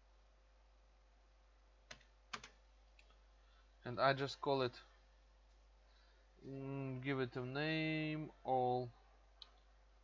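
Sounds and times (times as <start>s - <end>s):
computer keyboard keystrokes: 1.9s - 2.6s.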